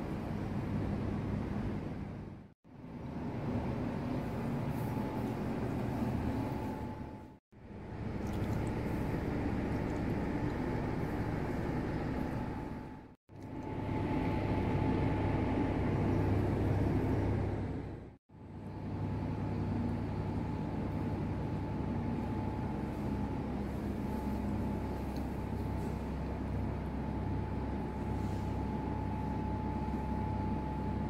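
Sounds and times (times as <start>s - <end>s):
low background hum: 0.0s - 31.0s
faint high whine: 2.7s - 31.0s.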